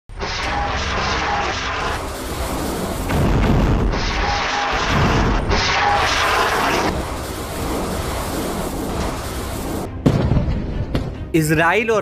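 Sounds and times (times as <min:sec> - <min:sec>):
jet-like roar with whistling: 0:00.1 - 0:09.9.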